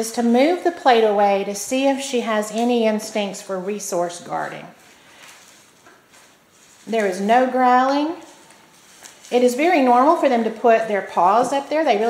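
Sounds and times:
woman's voice: 0:00.0 - 0:04.8, 0:06.8 - 0:08.4, 0:09.3 - 0:12.0.

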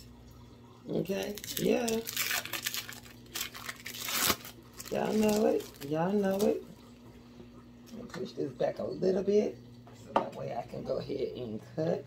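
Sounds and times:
packaging crinkling and rustling: 0:01.1 - 0:06.7.

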